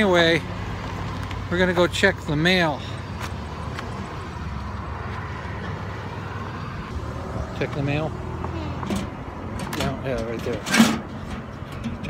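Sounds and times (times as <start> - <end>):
motor vehicle engine rumbling: 0.0 - 12.0
street noise: 0.0 - 12.0.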